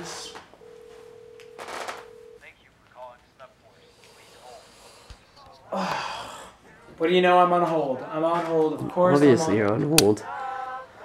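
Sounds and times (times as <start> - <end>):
telephone dial tone: 0.6 - 2.4.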